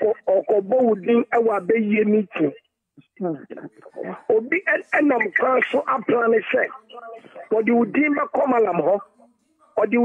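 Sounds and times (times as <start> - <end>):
person talking over telephone: 0.0 - 9.1, 9.8 - 10.0.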